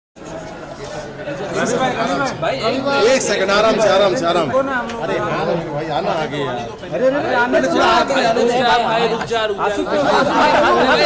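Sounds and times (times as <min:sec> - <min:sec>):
people talking over one another: 0:00.2 - 0:11.0.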